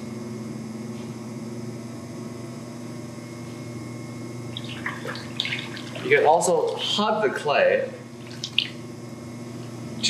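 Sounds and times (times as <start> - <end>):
pottery wheel motor humming: 0.0 - 10.0.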